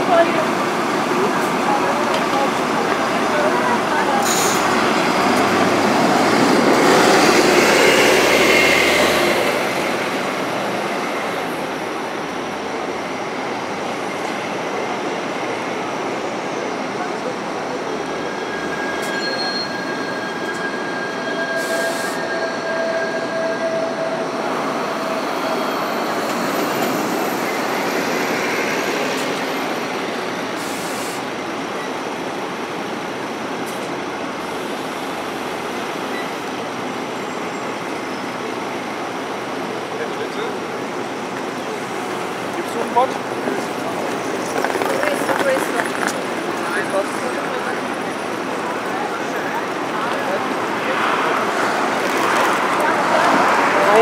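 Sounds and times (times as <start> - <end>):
city traffic: 0.0 - 54.0
rail wheel squeal: 3.3 - 11.4, 16.4 - 29.6, 36.0 - 36.6.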